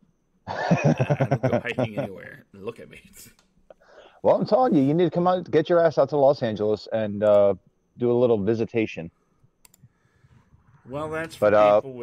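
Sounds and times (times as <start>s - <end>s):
man talking: 0.9s - 3.4s, 4.2s - 9.1s, 10.9s - 12.0s.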